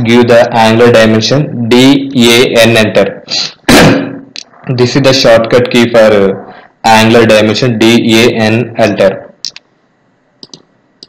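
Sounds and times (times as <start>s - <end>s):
computer mouse clicks: 10.4s - 10.7s.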